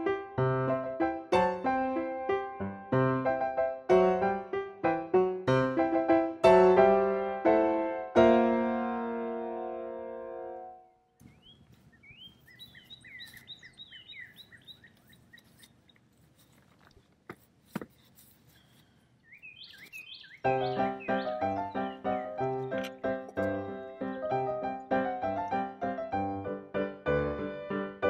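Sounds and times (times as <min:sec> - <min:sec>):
piano music: 0:00.0 - 0:11.0, 0:20.4 - 0:28.0
faint birds chirping: 0:10.8 - 0:17.2, 0:17.9 - 0:24.9.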